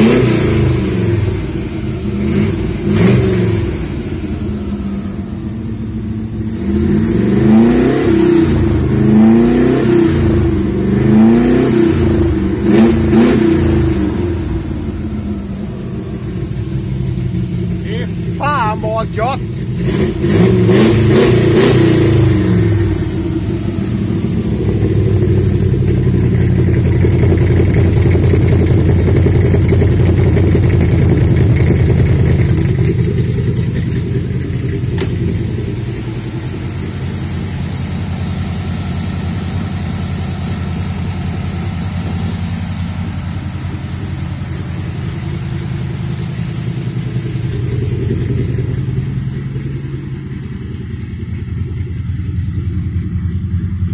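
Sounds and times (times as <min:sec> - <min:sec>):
car engine idling: 0:00.0 - 0:53.9.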